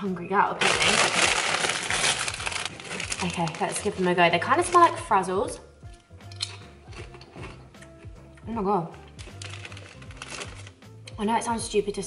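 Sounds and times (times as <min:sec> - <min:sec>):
quiet background music: 0:00.0 - 0:12.0
crisp crunching: 0:00.6 - 0:05.0, 0:06.3 - 0:08.0, 0:09.1 - 0:10.8.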